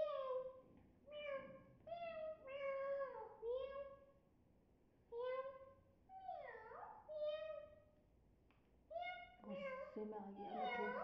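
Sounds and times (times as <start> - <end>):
parakeet mimicking cat meow: 8.9 - 11.0.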